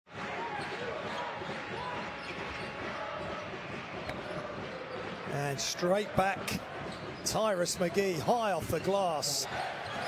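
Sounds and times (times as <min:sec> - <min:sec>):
crowd noise: 0:00.1 - 0:10.0.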